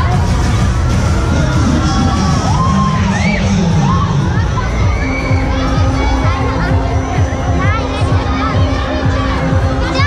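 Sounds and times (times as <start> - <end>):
loud fairground music: 0.0 - 10.0.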